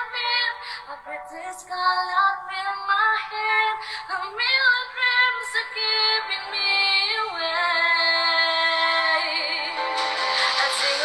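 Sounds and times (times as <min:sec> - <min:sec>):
woman singing pop song: 0:00.0 - 0:11.0
backing music: 0:09.0 - 0:11.0.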